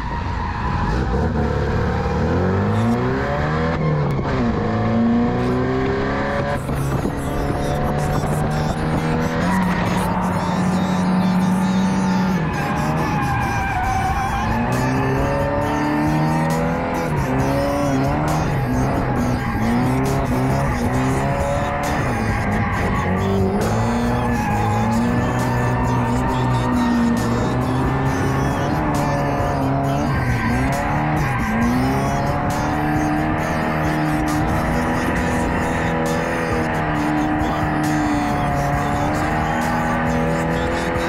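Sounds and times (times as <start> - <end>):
car engine revving: 0.0 - 41.0
tyres squealing: 6.4 - 41.0.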